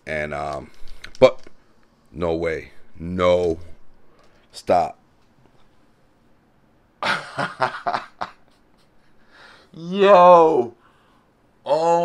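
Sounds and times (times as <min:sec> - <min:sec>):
man laughing: 0:07.0 - 0:09.2.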